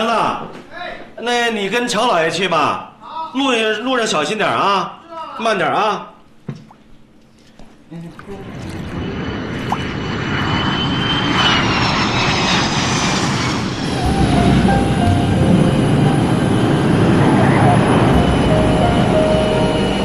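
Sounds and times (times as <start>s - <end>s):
jet engines whining and rumbling: 7.8s - 20.0s.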